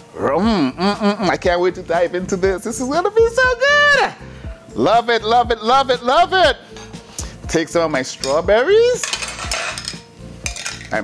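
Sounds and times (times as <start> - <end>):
metal spoon scraping glass bowl: 9.0 - 10.0.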